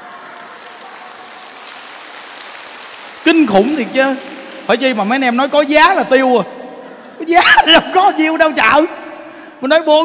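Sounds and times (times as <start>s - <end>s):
crowd clapping: 0.0s - 6.2s
crowd laughing: 6.6s - 7.4s.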